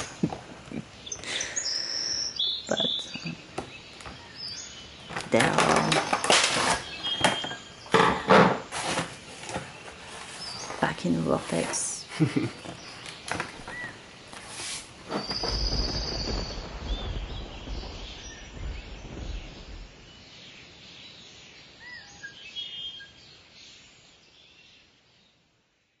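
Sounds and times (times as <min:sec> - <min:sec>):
bird chirps and trill: 0:01.0 - 0:08.0
low rumble: 0:15.4 - 0:20.2.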